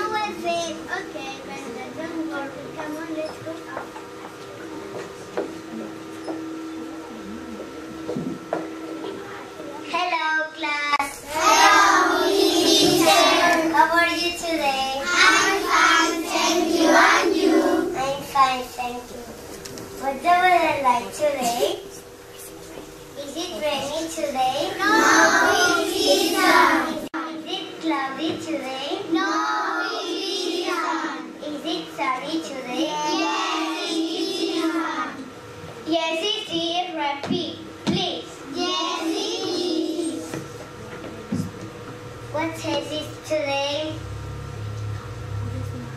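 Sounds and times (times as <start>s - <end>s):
young children singing: 11.0s - 18.4s, 24.6s - 27.1s, 29.1s - 31.3s, 32.8s - 35.2s, 38.5s - 40.4s.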